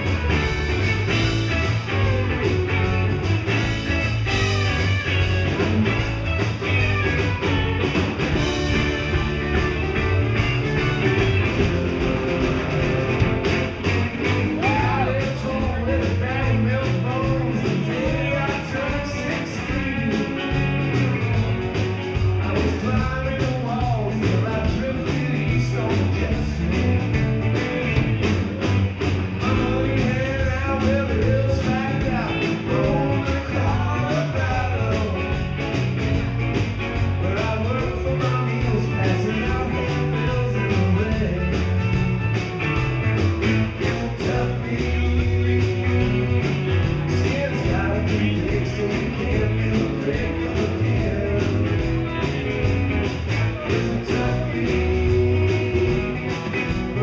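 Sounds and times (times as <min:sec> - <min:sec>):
electric guitars: 0:00.0 - 0:57.0
rock band playing: 0:00.0 - 0:57.0
man singing: 0:14.2 - 0:21.2, 0:22.2 - 0:28.2, 0:29.3 - 0:35.8, 0:37.0 - 0:42.2, 0:43.4 - 0:57.0.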